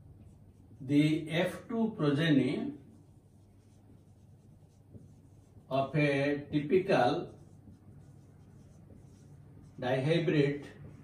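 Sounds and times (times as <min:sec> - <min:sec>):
marker pen on whiteboard: 0:00.0 - 0:11.0
person speaking: 0:00.8 - 0:11.0.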